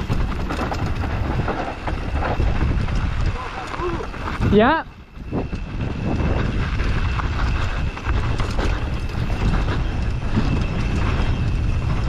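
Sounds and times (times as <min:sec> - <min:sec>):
bike clicks and rattles: 0:00.0 - 0:12.0
tyres rumbling on gravel: 0:00.0 - 0:12.0
wind buffeting microphone: 0:00.0 - 0:12.0.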